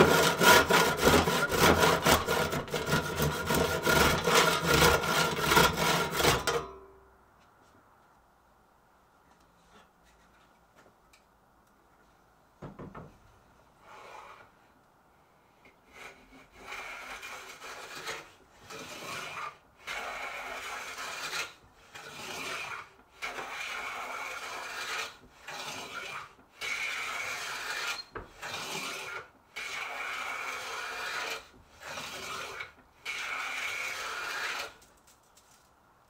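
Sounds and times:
hand plane shaving wood: 0.0s - 6.6s, 15.8s - 34.8s.

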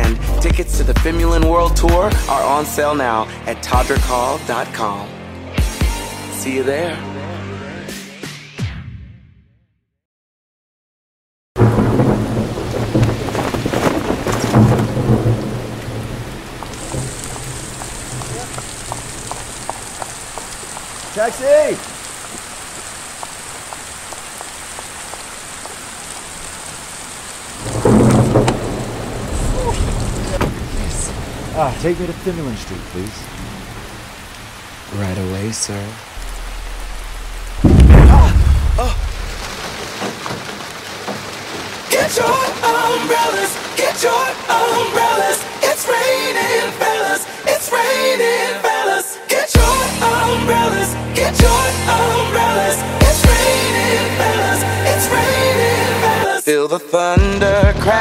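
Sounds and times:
heavy rain: 0.0s - 7.4s, 11.6s - 56.5s
thunder rumbling: 11.6s - 21.2s, 21.8s - 35.0s, 36.1s - 46.1s
water drips: 13.0s - 34.9s.

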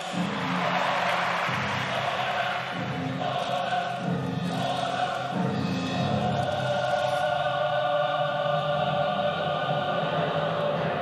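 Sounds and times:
choir singing chant-like notes: 0.0s - 11.0s.

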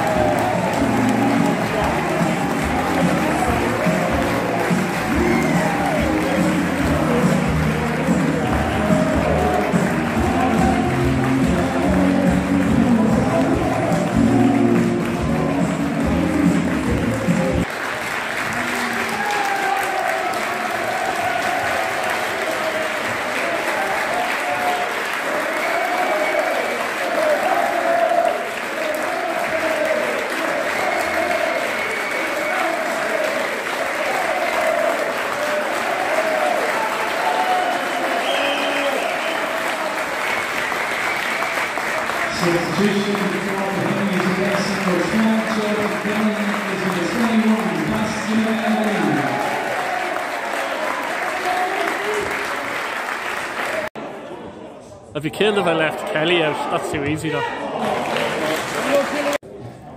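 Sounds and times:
crowd voices: 0.0s - 17.8s
music: 0.0s - 17.8s
crowd clapping: 0.0s - 54.0s, 55.6s - 59.5s.

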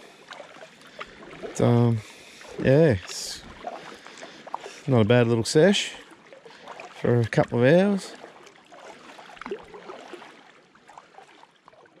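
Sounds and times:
faint water lapping around kayak: 0.0s - 12.0s.

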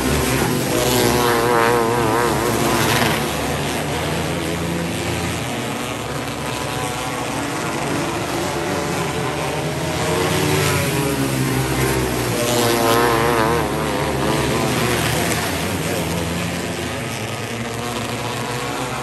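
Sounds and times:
race car engines revving: 0.0s - 19.0s.

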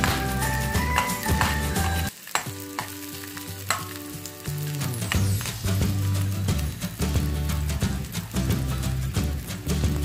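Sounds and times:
background music: 0.0s - 10.0s
onion and garlic sizzling in oil: 0.0s - 10.0s.

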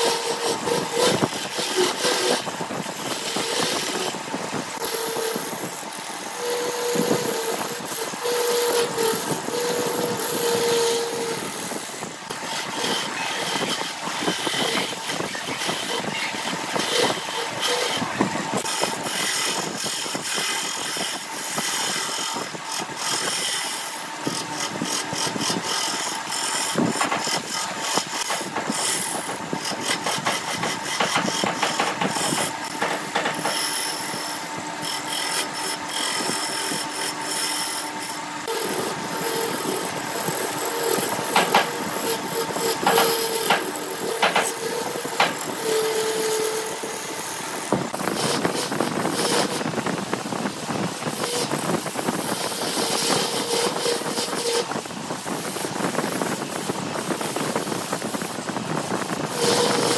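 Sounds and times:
turning tool scraping wood: 0.0s - 59.9s
wood lathe humming: 0.0s - 59.9s.

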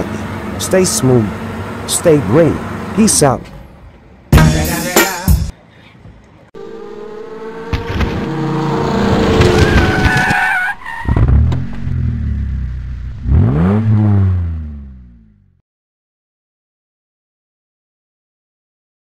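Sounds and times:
tyres screeching: 6.6s - 11.7s
racing car engines revving: 6.6s - 15.4s.

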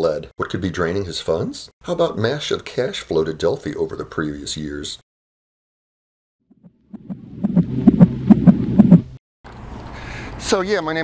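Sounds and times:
heartbeat throbbing pulse: 6.5s - 9.2s.

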